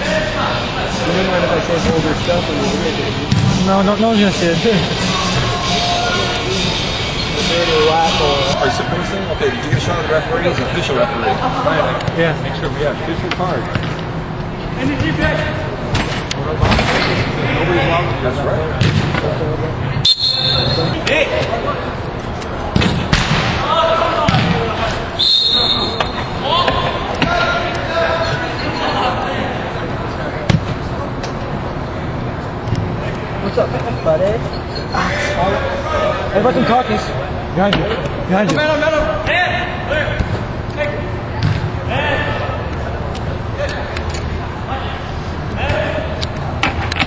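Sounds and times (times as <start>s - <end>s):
players shouting: 4.8s - 11.3s, 23.4s - 29.8s.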